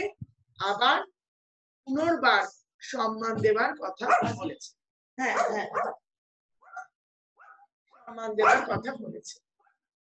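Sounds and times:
person's voice over video call: 0.0s - 1.1s, 1.9s - 5.7s, 8.1s - 9.3s.

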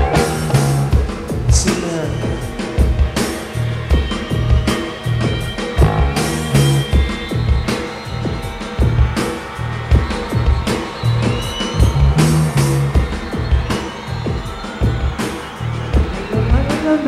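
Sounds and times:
electric guitar: 0.0s - 7.7s
heavy drum beat: 0.0s - 17.0s
rock band playing: 0.0s - 17.0s.

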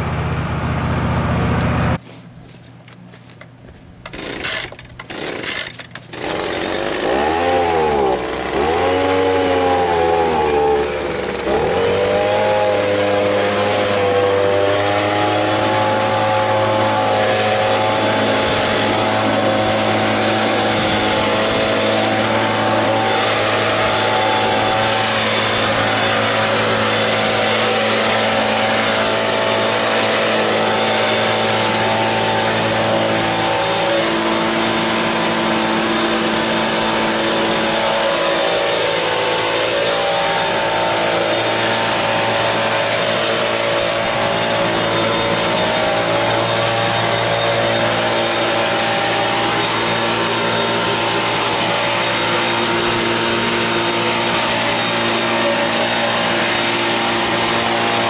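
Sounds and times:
pull cord tugs: 3.3s - 7.1s
leaf blower engine revving: 4.0s - 58.0s.

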